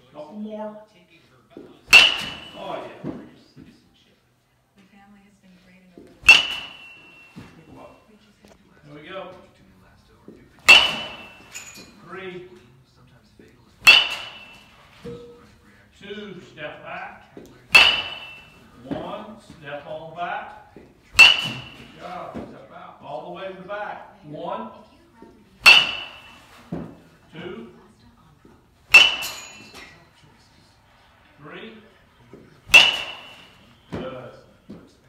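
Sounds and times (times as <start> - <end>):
baseball bat hitting ball: 1.9 - 3.2, 6.2 - 7.6, 10.6 - 11.9, 13.8 - 15.2, 17.7 - 19.2, 21.1 - 22.5, 25.6 - 27.0, 28.9 - 29.8, 32.6 - 34.8.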